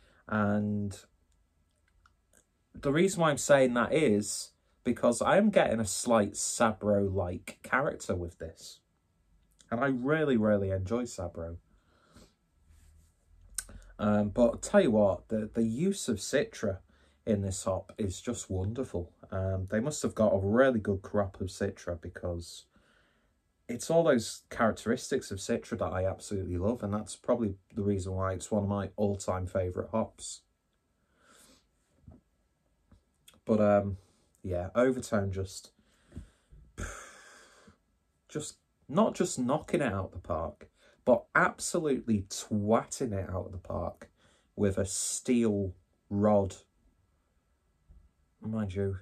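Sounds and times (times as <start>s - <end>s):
faint breath-like hiss: 0.0s - 1.1s, 11.6s - 14.1s, 22.6s - 23.5s, 31.0s - 32.0s, 35.6s - 37.8s, 44.0s - 44.6s
man sighing: 36.1s - 37.7s.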